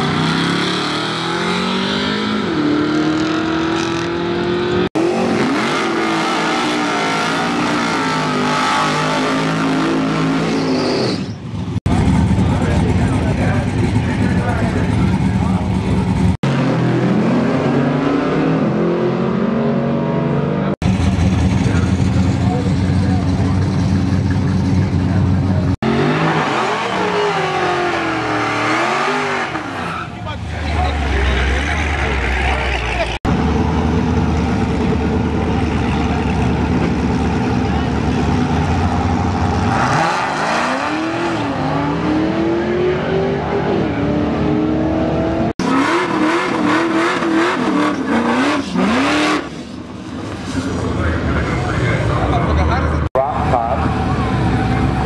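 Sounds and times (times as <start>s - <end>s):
drag car engines revving: 0.0s - 55.0s.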